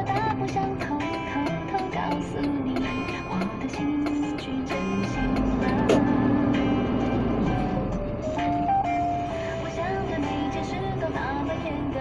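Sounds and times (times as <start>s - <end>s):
music from a radio: 0.0s - 12.0s
truck diesel engine rumble: 0.0s - 12.0s.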